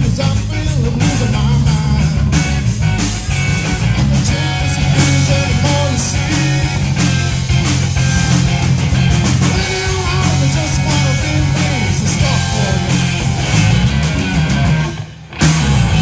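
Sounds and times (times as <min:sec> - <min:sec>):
amplified electric guitar: 0:00.0 - 0:16.0
drums: 0:00.0 - 0:16.0
electric bass: 0:00.0 - 0:16.0.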